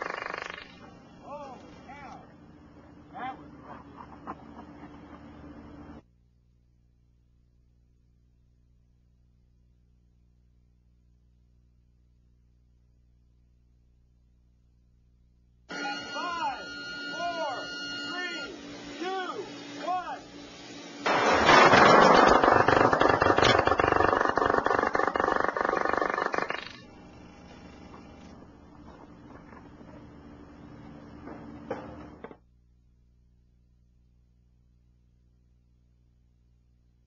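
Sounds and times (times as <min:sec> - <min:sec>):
steady hum: 0:00.0 - 0:37.0
rapid buzz of laser detonations: 0:21.0 - 0:27.8.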